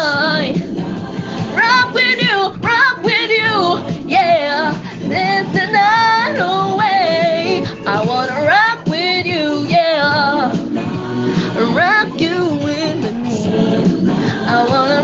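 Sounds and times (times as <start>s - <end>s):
backing music track: 0.0s - 15.0s
woman singing: 0.0s - 15.0s.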